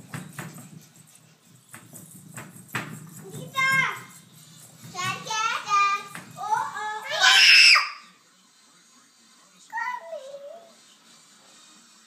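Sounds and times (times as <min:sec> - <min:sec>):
child screaming: 0:07.0 - 0:08.0.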